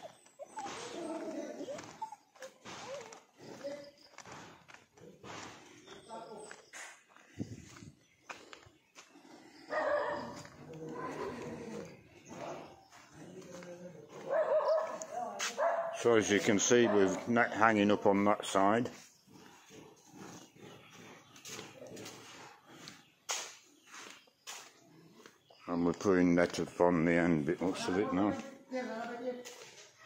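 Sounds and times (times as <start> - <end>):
dog barking and whining: 0.0 - 3.6, 9.7 - 11.9, 14.2 - 16.0.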